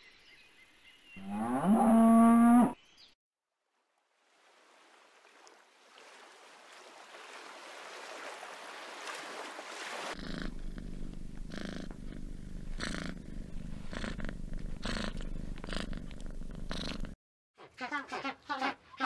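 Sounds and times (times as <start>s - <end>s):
cat purring: 10.2s - 17.2s.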